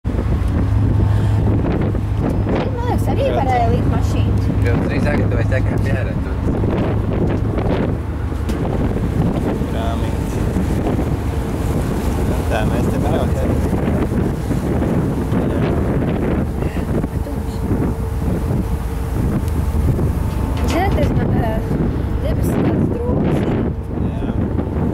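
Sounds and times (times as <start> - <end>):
low rumble: 0.0 - 24.9
wind buffeting microphone: 0.0 - 24.9
woman's voice: 2.6 - 4.4, 16.6 - 17.8, 20.6 - 23.7.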